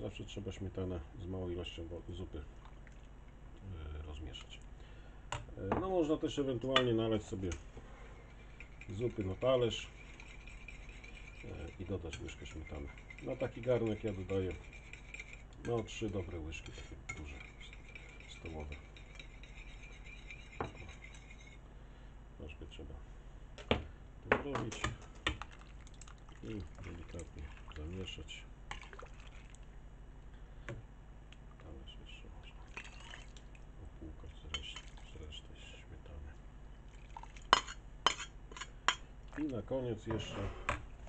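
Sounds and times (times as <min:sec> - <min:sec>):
scraping cream from bowl: 0:08.0 - 0:21.6
fork clinking on ceramic plate: 0:37.5 - 0:39.0.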